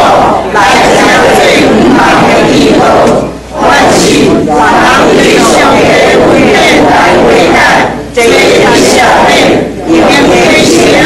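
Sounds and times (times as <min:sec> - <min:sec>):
congregation reciting in unison: 0:00.0 - 0:11.0.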